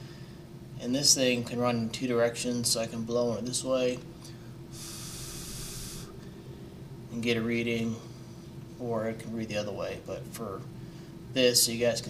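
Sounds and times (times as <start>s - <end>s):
breath hissing across anemometer: 4.7s - 6.4s.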